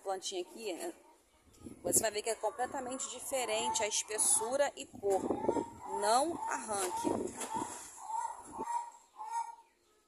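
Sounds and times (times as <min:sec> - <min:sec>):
bird calls: 0:03.0 - 0:10.0.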